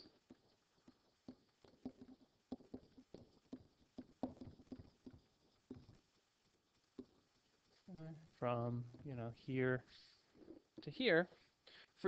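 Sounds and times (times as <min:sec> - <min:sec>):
stylus tapping on tablet: 0:00.0 - 0:06.1.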